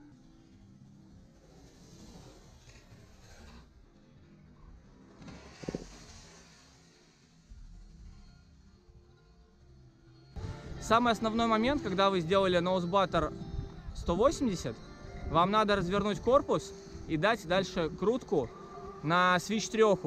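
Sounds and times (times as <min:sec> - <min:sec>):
quiet background music: 0:00.0 - 0:20.0
skis hissing across snow: 0:05.3 - 0:07.4
man talking: 0:10.8 - 0:20.0.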